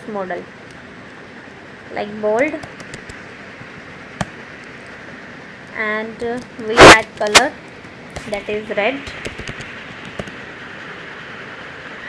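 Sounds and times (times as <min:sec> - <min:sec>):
steady background hiss: 0:00.0 - 0:12.0
keyboard keystrokes: 0:02.6 - 0:03.2.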